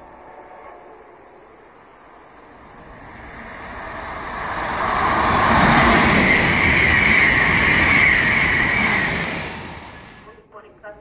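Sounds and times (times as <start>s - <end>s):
high-speed train passing: 0.0s - 11.0s
high whine: 2.5s - 10.2s.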